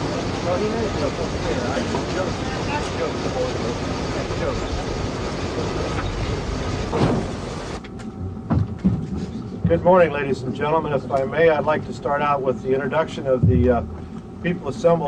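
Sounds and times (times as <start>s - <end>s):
loud thump: 6.9s - 7.4s, 13.4s - 14.0s.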